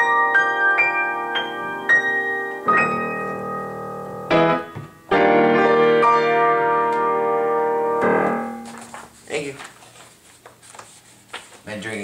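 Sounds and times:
piano chord ringing: 0.0 - 8.9
sheet music rustling: 0.0 - 12.0.

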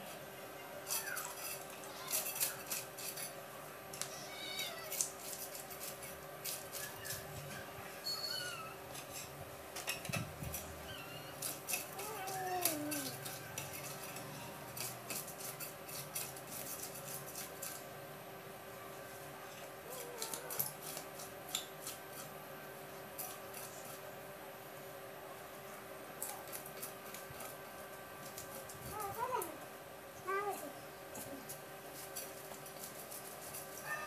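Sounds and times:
knife scraping fish scales: 0.9 - 3.4, 4.8 - 7.3, 10.5 - 17.9, 19.9 - 22.4, 23.2 - 24.0, 31.2 - 33.9.

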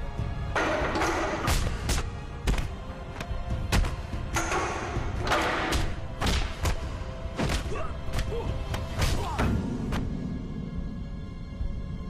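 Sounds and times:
film score: 0.0 - 12.0.

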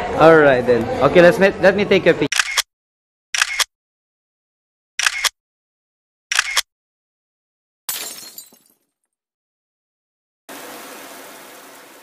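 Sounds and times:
camera shutter double click: 2.3 - 2.7, 3.4 - 3.7, 5.0 - 5.4, 6.3 - 6.7.

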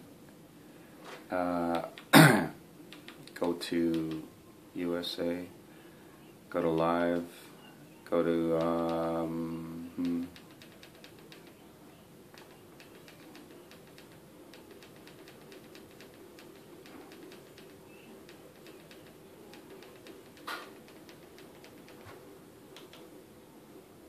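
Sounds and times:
low steady hum: 0.0 - 24.0
remote control buttons clicking: 2.9 - 4.3, 8.5 - 9.2, 10.0 - 11.6, 12.3 - 23.1.

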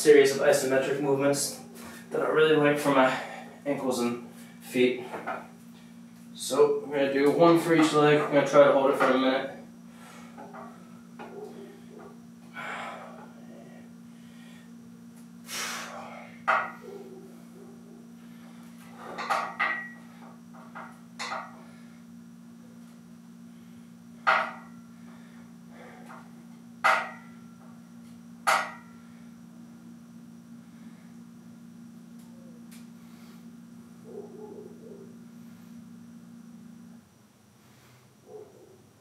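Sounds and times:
steady low hum: 0.0 - 39.0
man blowing out sharp breaths: 15.4 - 16.2.

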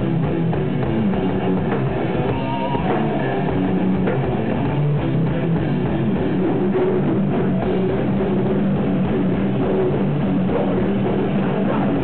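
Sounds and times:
distorted electric guitars: 0.0 - 12.0
drum kit: 0.0 - 12.0.

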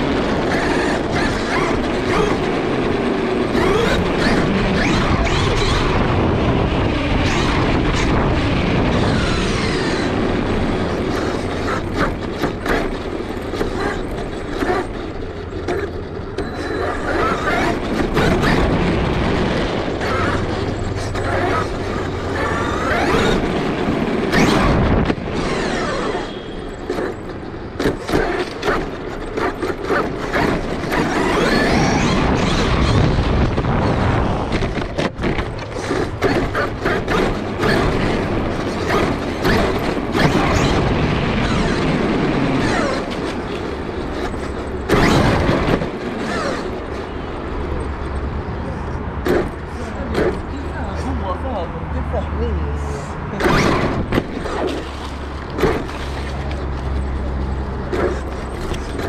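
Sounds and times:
electric motor and gears whining: 0.0 - 59.0.

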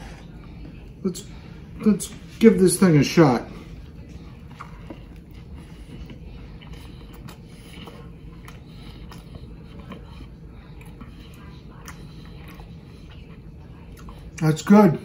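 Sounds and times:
man chewing food: 0.0 - 15.0
steady low hum: 0.0 - 15.0.

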